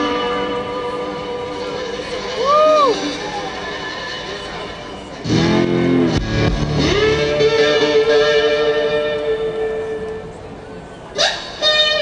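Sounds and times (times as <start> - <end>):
lap slide guitar: 5.2 - 10.3.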